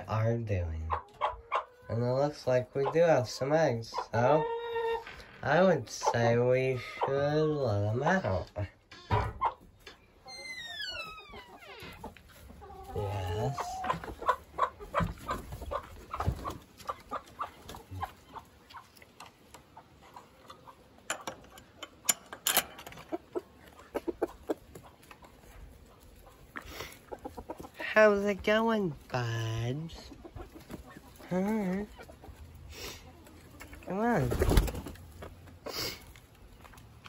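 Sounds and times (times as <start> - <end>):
hens clucking: 0.0 - 37.0.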